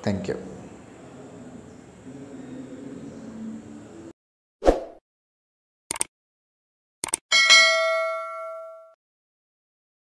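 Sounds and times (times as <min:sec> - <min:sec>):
bright notification bell ding: 0:07.3 - 0:09.0.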